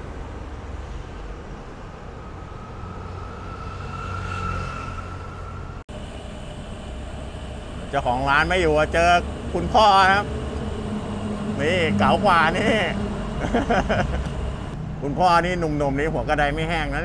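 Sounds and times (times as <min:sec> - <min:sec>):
faint rising whine: 0:00.0 - 0:15.2
road traffic rumble: 0:00.0 - 0:17.0
steady hum: 0:05.2 - 0:15.8.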